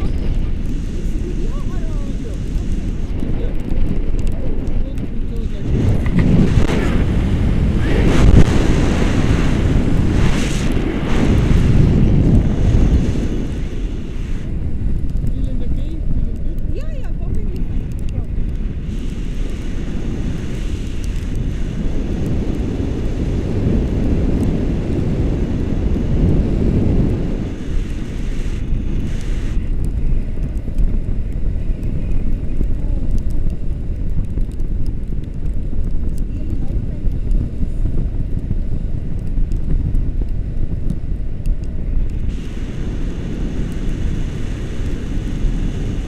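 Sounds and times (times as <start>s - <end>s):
wind buffeting microphone: 0.0s - 46.0s.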